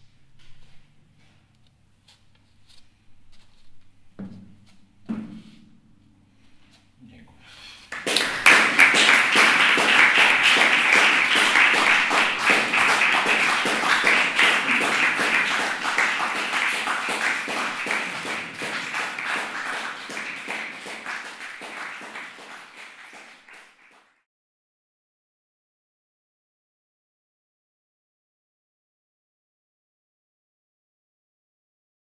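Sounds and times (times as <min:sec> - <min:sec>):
audience applauding: 0:07.9 - 0:24.2.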